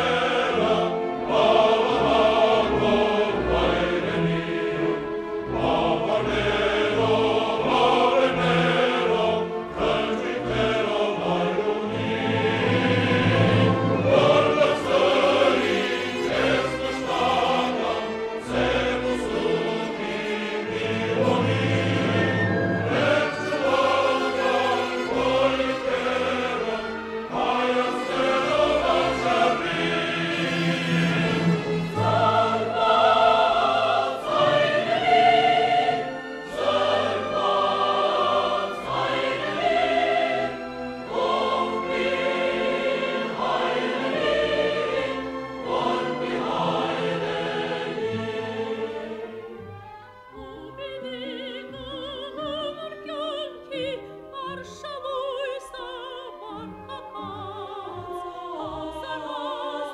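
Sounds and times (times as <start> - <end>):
choir singing: 0.0 - 59.9
symphony orchestra playing: 0.0 - 59.9.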